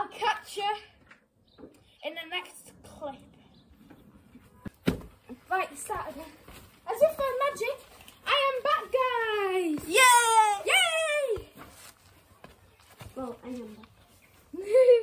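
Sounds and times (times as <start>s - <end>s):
children's voices and laughter: 14.3s - 15.0s.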